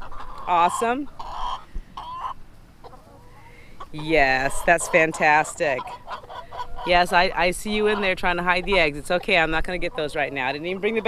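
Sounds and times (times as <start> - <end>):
hens clucking: 0.0 - 11.0.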